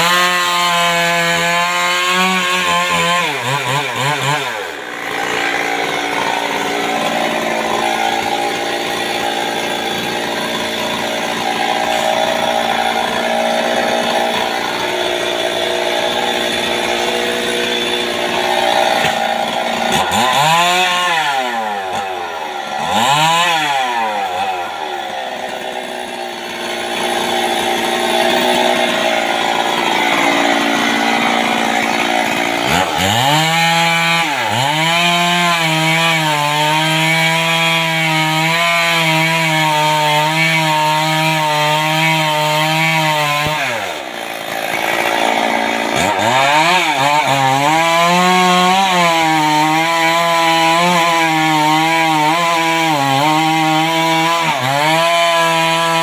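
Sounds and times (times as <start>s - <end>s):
chainsaw running and revving: 0.0s - 56.0s.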